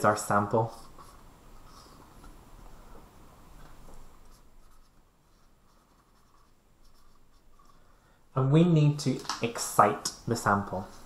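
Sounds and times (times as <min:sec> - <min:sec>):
marker scratching on whiteboard: 0:00.1 - 0:02.3, 0:04.2 - 0:07.8, 0:10.0 - 0:11.0.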